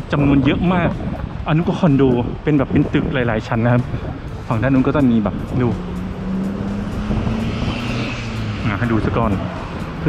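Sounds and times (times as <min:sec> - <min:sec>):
heavy road traffic: 0:00.0 - 0:10.0
low engine drone: 0:03.7 - 0:10.0.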